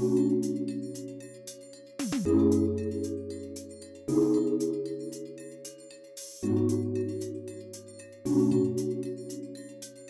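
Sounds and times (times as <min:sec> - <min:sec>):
synth chords over ticking beat: 0:00.0 - 0:10.0.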